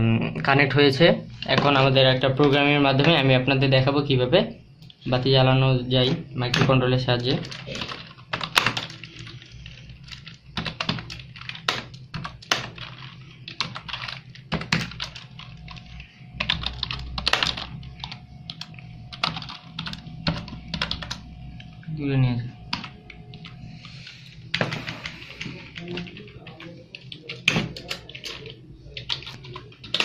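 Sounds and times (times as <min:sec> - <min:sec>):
typing on laptop keyboard: 0:06.0 - 0:21.8, 0:24.5 - 0:30.0.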